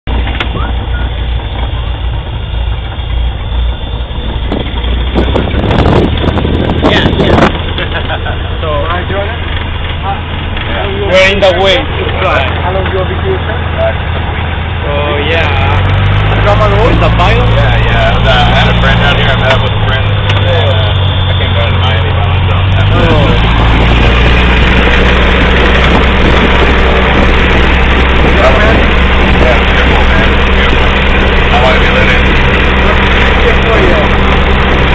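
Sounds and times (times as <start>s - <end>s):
harsh noise bursts: 0.1s - 34.9s
propeller plane engine drone: 0.1s - 34.9s.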